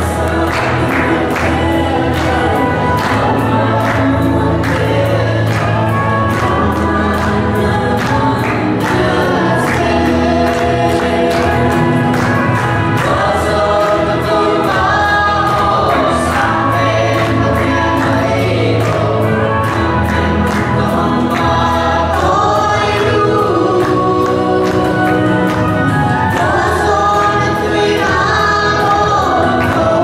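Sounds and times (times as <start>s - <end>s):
accompaniment with steady beat: 0.0s - 30.0s
man and children singing: 0.0s - 30.0s.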